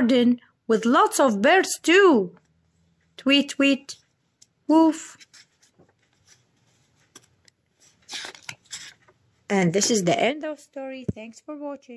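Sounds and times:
book pages and cover rustling: 5.0 - 9.2.

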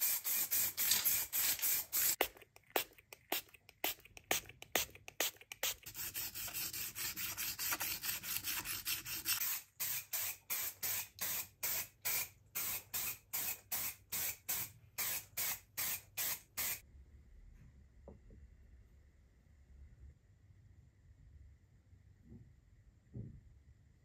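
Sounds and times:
aerosol spray can hissing: 0.0 - 2.2, 8.4 - 16.8.

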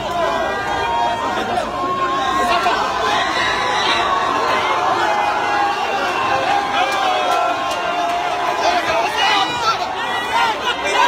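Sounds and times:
crowd cheering: 0.0 - 11.0
crowd talking and shouting: 0.0 - 11.0.

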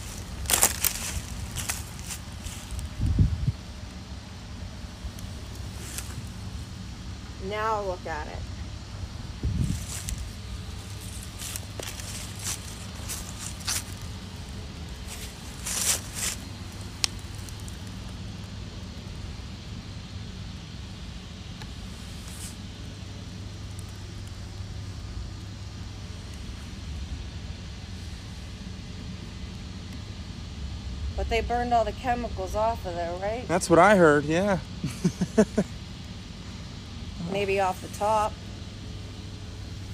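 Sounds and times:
low rumble of background noise: 0.0 - 39.9.

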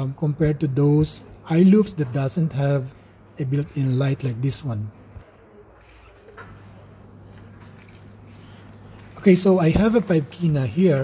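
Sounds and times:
steady low hum: 0.0 - 11.0
handling noises on tabletop: 5.8 - 10.6.

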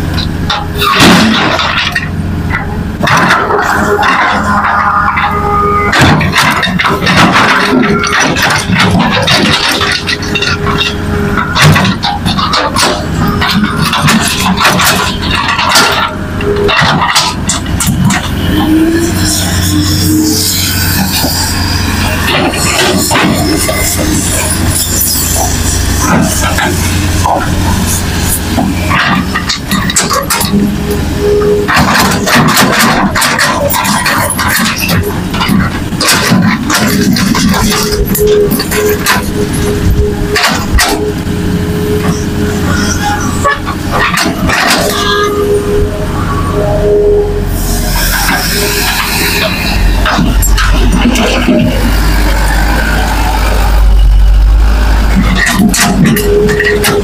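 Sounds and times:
diesel engine under load: 0.0 - 57.0
steady whine: 0.0 - 57.0
rock and soil clatter: 5.9 - 18.3, 31.7 - 41.1, 48.6 - 52.8.

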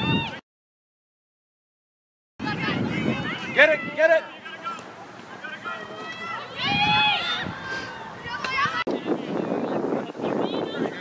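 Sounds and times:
voices talking: 2.4 - 11.0.

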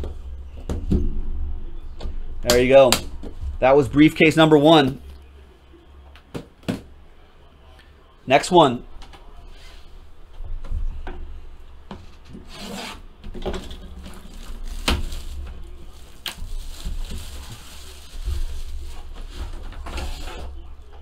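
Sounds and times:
shrink wrap tearing and crinkling: 13.6 - 20.4.

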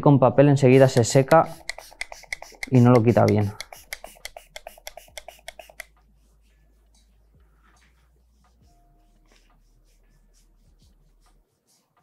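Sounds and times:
spray bottle spritzing: 0.7 - 5.9.

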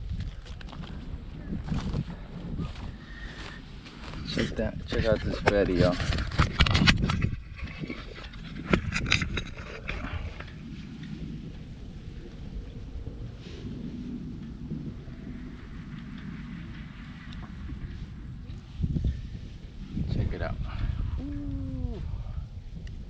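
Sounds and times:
low outdoor rumble: 0.0 - 23.0
camera handling rustles and clicks: 5.4 - 10.0.

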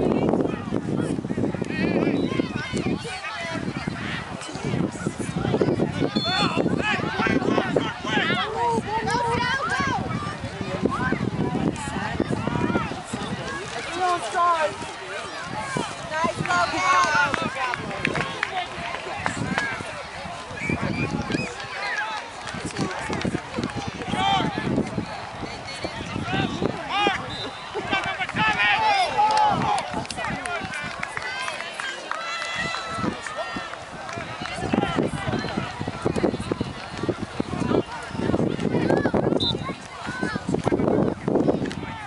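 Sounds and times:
people calling and talking: 0.0 - 42.0.

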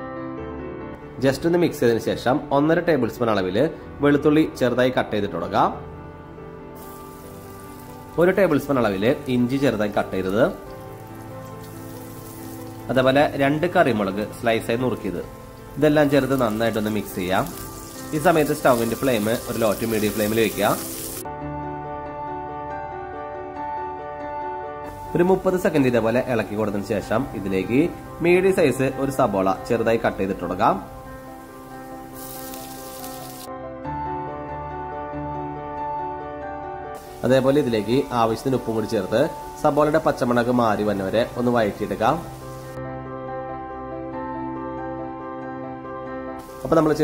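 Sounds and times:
soft background music: 0.0 - 47.0
hot oil sizzling: 6.8 - 21.3, 24.9 - 33.5, 37.0 - 42.8, 46.4 - 47.0
person speaking: 12.9 - 21.0, 37.1 - 42.3, 46.5 - 47.0.

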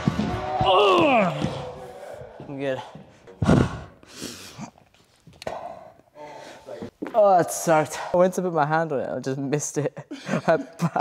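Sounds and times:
person gasping and exhaling heavily: 3.4 - 4.8.

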